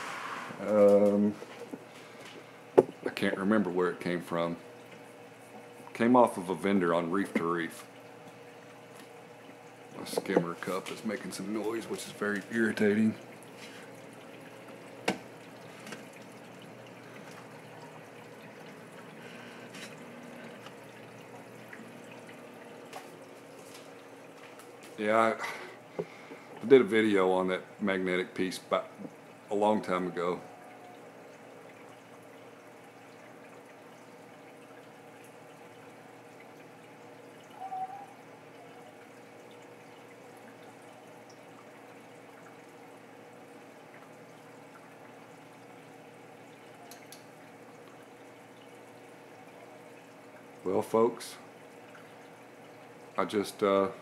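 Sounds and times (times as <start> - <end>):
protein skimmer humming: 0.0 - 54.0
water trickling and dripping: 0.2 - 54.0.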